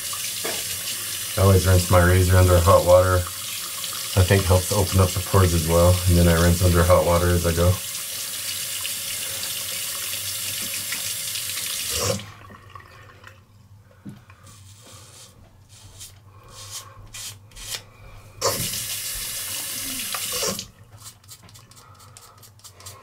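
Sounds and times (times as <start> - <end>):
water running from a tap: 0.0 - 13.4, 18.4 - 20.7.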